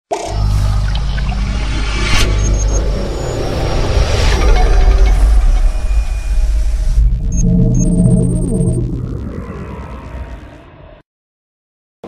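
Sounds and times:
deep bass rumble: 0:00.4 - 0:11.0.

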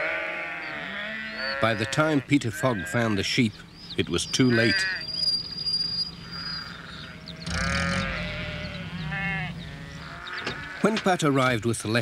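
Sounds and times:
sheep bleating: 0:00.0 - 0:03.2, 0:04.5 - 0:05.1, 0:07.1 - 0:11.0
low steady hum: 0:05.1 - 0:10.8.

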